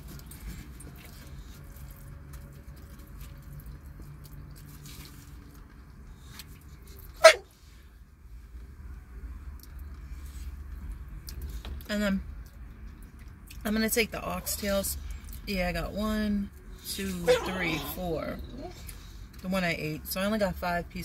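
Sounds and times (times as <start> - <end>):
dog barking: 7.2 - 7.5.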